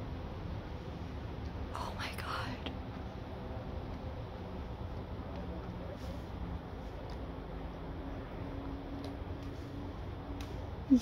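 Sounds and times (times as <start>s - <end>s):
low background rumble: 0.0s - 11.0s
whispered voice: 1.8s - 2.8s.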